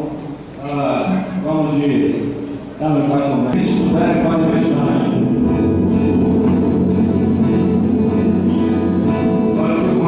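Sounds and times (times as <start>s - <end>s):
live band playing with guitar: 3.6s - 10.0s.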